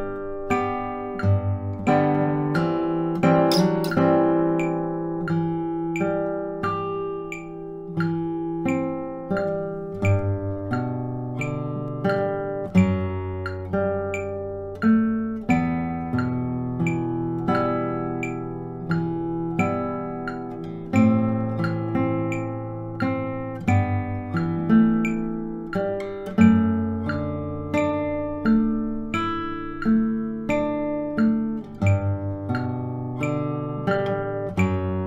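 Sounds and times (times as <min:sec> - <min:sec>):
classical guitar fingerstyle: 0:00.0 - 0:35.0.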